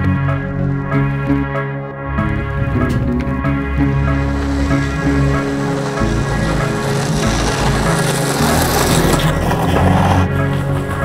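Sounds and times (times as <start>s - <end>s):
background music with low notes: 0.0s - 11.0s
longboard wheels rolling on asphalt: 2.2s - 11.0s.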